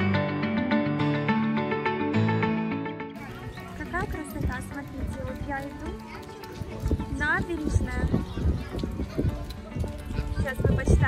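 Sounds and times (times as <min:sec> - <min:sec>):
background music: 0:00.0 - 0:11.0
people talking: 0:03.2 - 0:11.0.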